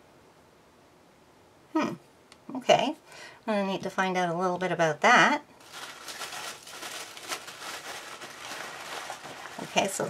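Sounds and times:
paper and packaging rustling: 0:05.6 - 0:10.0.

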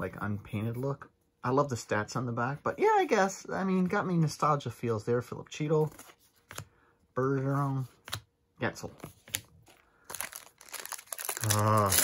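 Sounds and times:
foil wrapper crinkling: 0:09.7 - 0:12.0.

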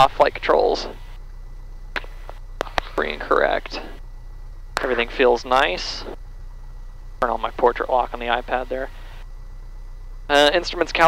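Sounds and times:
aircraft engine idling: 0:00.0 - 0:11.0.

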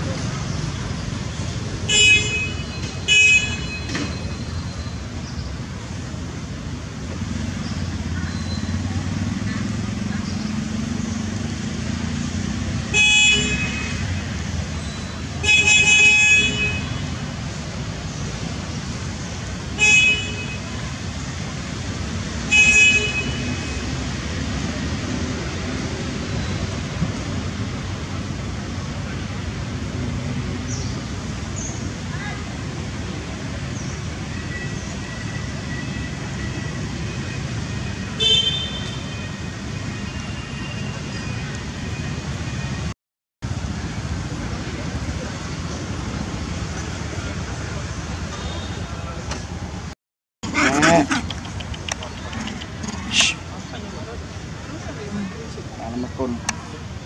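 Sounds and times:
low rumble of road traffic: 0:00.0 - 0:57.0
vehicle horns tooting: 0:37.1 - 0:42.8.

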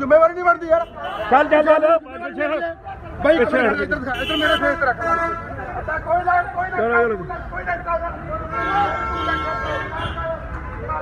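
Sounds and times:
men's raised voices: 0:00.0 - 0:11.0
vehicle horn blast: 0:04.1 - 0:05.5.

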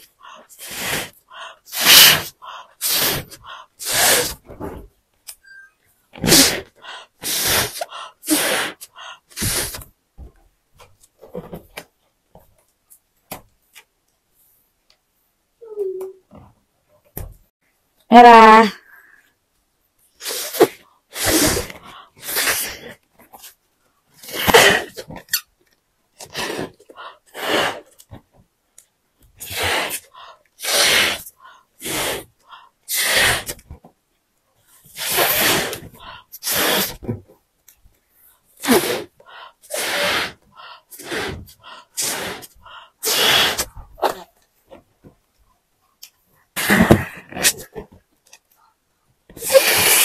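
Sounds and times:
balloon squeaking: 0:00.6 - 0:04.8, 0:20.2 - 0:22.8, 0:29.4 - 0:30.0, 0:30.6 - 0:32.3, 0:32.9 - 0:33.6, 0:35.0 - 0:37.0, 0:39.7 - 0:40.4, 0:41.0 - 0:44.2, 0:49.4 - 0:50.0.

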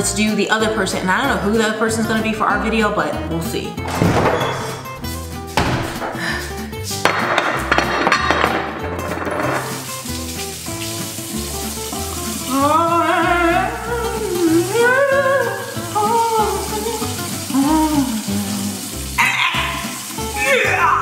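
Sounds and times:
bottle knocks and clinks: 0:07.0 - 0:09.9
faucet running into sink: 0:08.5 - 0:21.0.

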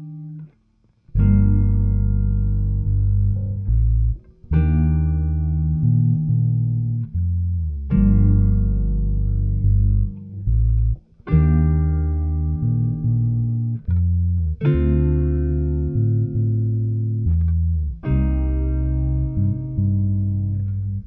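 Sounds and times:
held low bass: 0:01.1 - 0:21.0.

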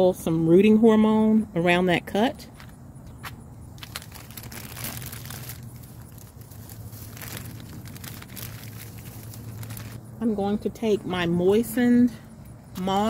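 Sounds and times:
plastic bag crinkling: 0:03.8 - 0:10.0.

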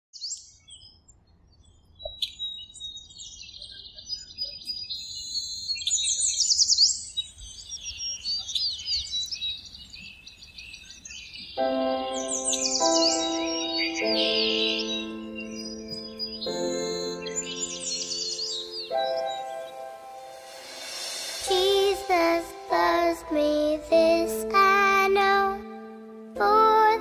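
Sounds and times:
small birds chirping and trilling: 0:00.2 - 0:23.9
soft music with held chords: 0:11.6 - 0:27.0.

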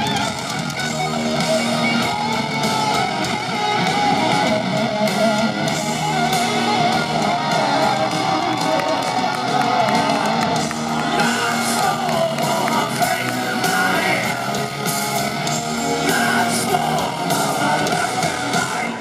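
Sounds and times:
drums: 0:00.0 - 0:19.0
electric guitar: 0:00.0 - 0:19.0
live rock band playing: 0:00.0 - 0:19.0.

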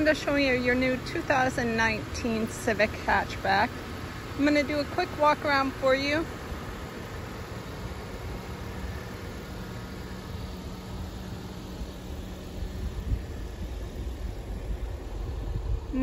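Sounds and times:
low rumble: 0:10.7 - 0:16.0.

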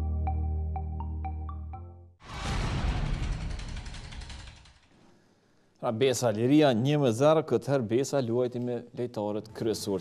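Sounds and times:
man speaking: 0:05.8 - 0:10.0.

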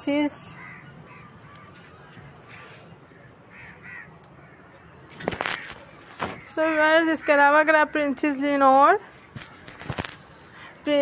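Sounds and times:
low background noise: 0:00.0 - 0:11.0
faint bird calls: 0:00.5 - 0:06.6.

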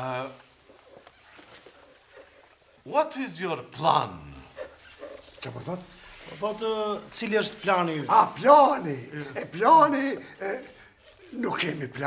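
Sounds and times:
man speaking: 0:00.0 - 0:00.5, 0:02.8 - 0:04.7, 0:05.3 - 0:12.0.

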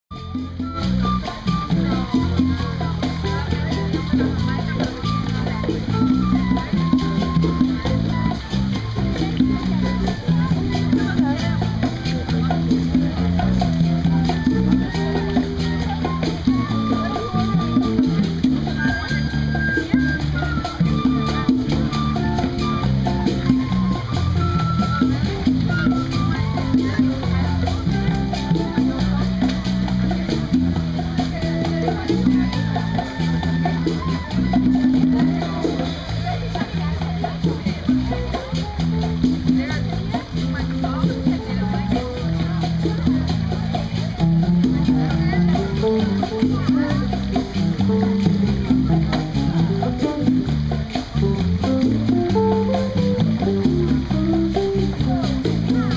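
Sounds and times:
bass line: 0:00.0 - 0:55.9
conga drums: 0:00.0 - 0:55.9
live band playing: 0:00.1 - 0:55.9.

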